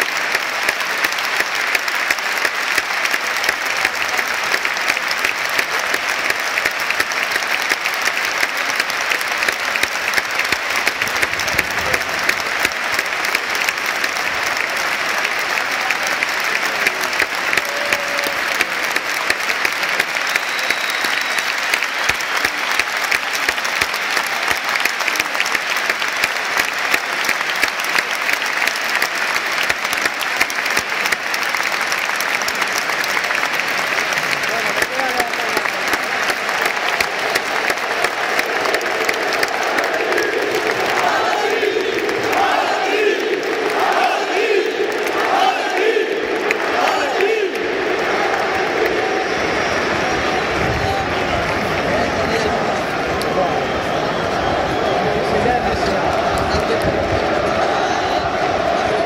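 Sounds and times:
stadium crowd applauding: 0:00.0 - 0:59.0.

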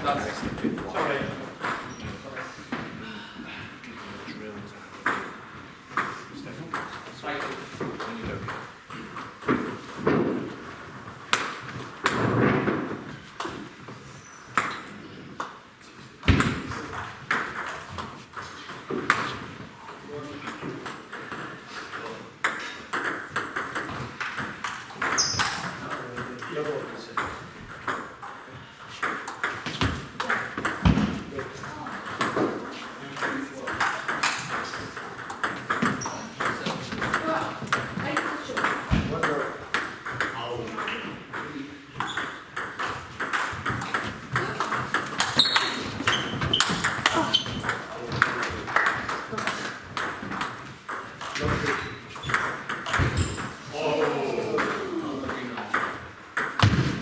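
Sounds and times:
table tennis balls clicking: 0:05.0 - 0:57.0.

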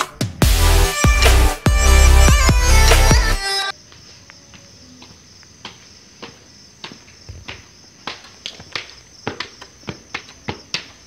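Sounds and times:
crickets chirring: 0:01.9 - 0:11.0
footsteps on hard stairs: 0:05.0 - 0:11.0.

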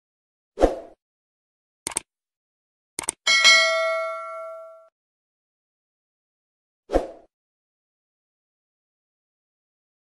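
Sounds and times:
quick clicks: 0:01.8 - 0:02.1, 0:03.0 - 0:03.2
bright bell ding: 0:03.3 - 0:04.9.

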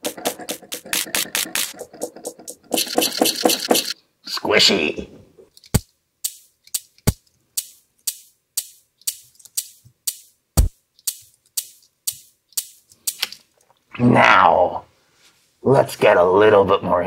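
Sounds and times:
rattly percussion drum loop: 0:00.0 - 0:04.0, 0:05.7 - 0:13.3.

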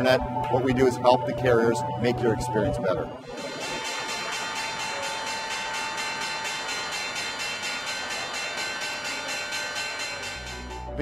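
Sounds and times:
electric bell ringing: 0:03.2 - 0:11.0.

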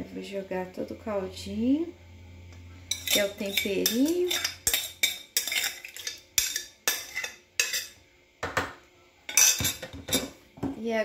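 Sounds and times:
metal spoon scraping ceramic bowl: 0:02.9 - 0:08.0.

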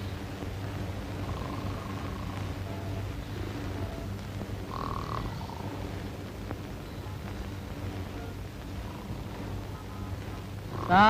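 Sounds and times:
men snoring: 0:01.2 - 0:02.6, 0:04.7 - 0:05.8, 0:10.7 - 0:11.0.

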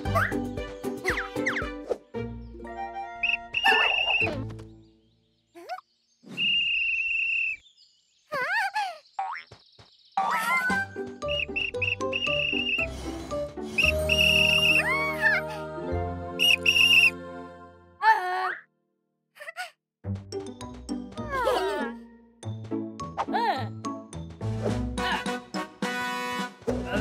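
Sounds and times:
high whistle-like tone: 0:06.3 - 0:07.6, 0:11.4 - 0:12.9, 0:13.7 - 0:14.8, 0:16.4 - 0:17.2.

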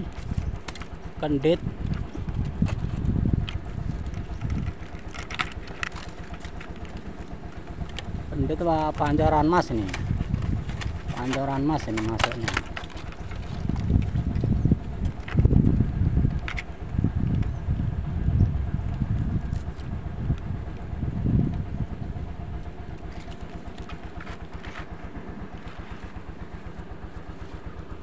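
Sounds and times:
twigs snapping: 0:00.0 - 0:01.0, 0:01.8 - 0:08.2, 0:09.8 - 0:14.2
handling dry bamboo twigs: 0:00.0 - 0:16.8, 0:19.4 - 0:21.0, 0:22.4 - 0:28.0
small engine running: 0:00.0 - 0:28.0.

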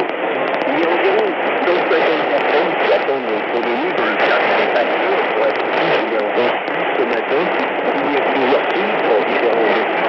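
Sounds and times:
radio static hiss: 0:00.0 - 0:10.0
voice talking on shortwave radio: 0:00.0 - 0:10.0.

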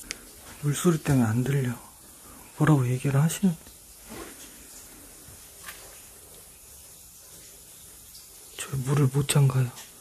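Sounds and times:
water spraying from burst pipe: 0:00.0 - 0:10.0.

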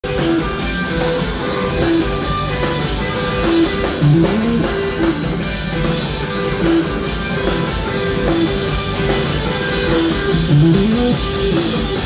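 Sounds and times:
drum kit: 0:00.0 - 0:12.0
electric guitar picking notes: 0:00.0 - 0:12.0.

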